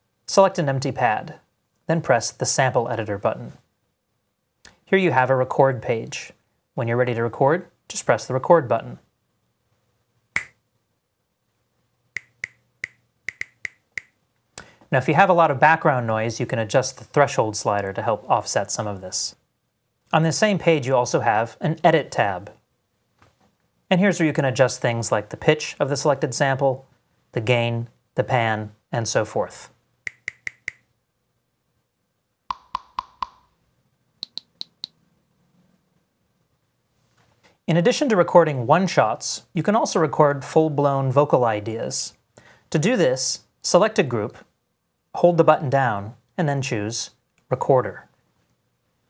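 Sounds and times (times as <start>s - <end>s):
finger snaps: 10.4s - 10.6s, 12.2s - 14.7s, 34.2s - 35.0s
percussive sample hits: 32.5s - 33.5s.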